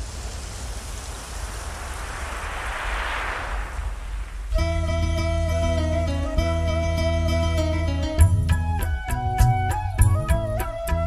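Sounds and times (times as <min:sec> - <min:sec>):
steady hiss: 0:00.0 - 0:08.0
deep bass rumble: 0:03.5 - 0:11.0.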